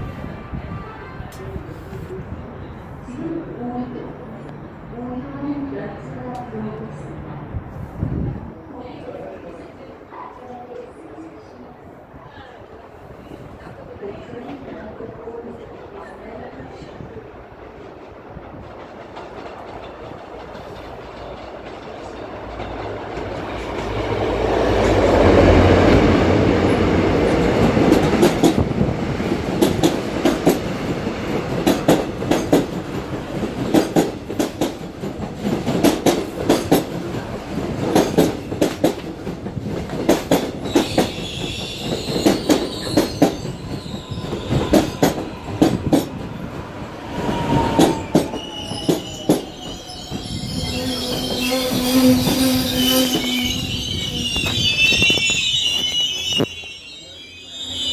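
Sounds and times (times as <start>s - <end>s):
electric train rumbling: 11.0s - 57.9s
train falling whine: 40.3s - 57.9s
high squeal: 40.7s - 45.8s, 47.1s - 57.9s.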